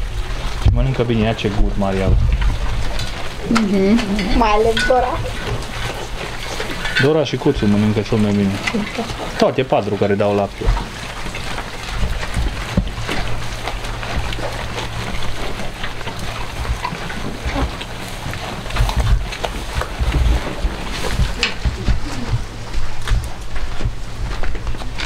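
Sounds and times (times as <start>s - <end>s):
goats chewing grass: 0.0s - 25.0s
grass rustling and crackling: 0.0s - 25.0s.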